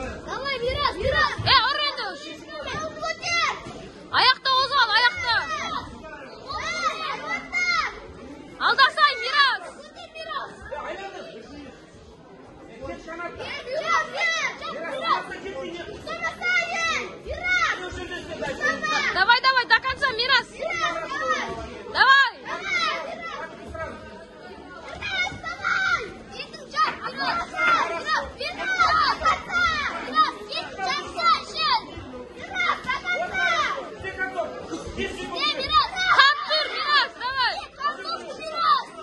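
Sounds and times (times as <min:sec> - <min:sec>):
children shouting and cheering: 0:00.3 - 0:05.9, 0:06.5 - 0:08.0, 0:20.6 - 0:23.5, 0:24.9 - 0:34.0, 0:35.2 - 0:39.0.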